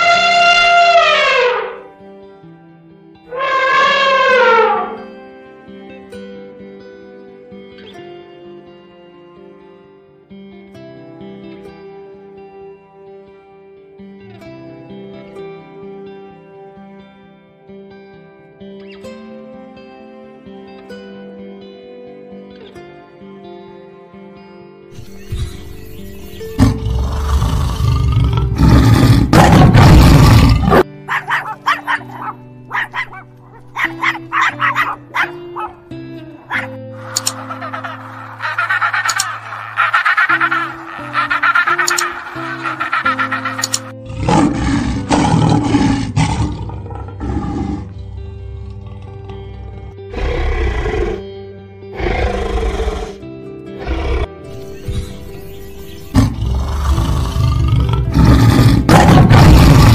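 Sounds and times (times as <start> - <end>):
background music: 0.0 - 59.9
tiger growling and roaring: 26.4 - 35.8, 36.4 - 51.3, 51.9 - 53.2, 53.8 - 55.2, 56.0 - 59.9
penguin calls: 31.0 - 44.0.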